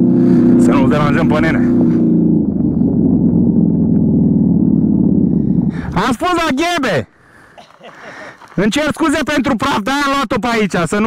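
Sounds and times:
atv engine running: 0:00.0 - 0:06.3.

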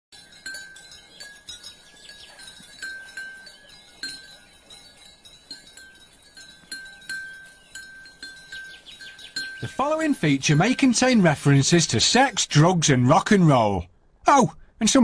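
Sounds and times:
light tinkling chimes: 0:00.2 - 0:12.4.

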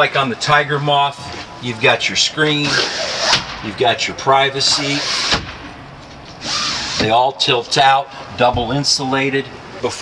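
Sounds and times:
window shade scraping slide: 0:02.6 - 0:03.4.

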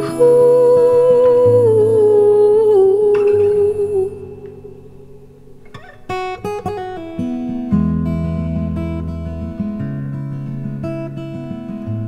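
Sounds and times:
woman humming: 0:00.0 - 0:04.7
acoustic guitar: 0:00.0 - 0:12.0.

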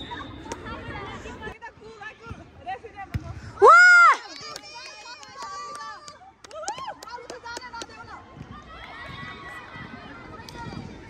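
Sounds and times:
loud shout: 0:03.6 - 0:06.1
girls shouting and calling: 0:03.6 - 0:10.8.

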